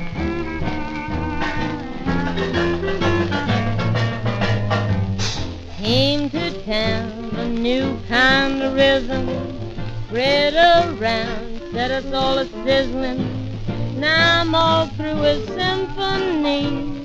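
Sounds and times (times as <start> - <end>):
bending melody line: 0.0 - 17.0
swing band instrumental: 0.0 - 17.0.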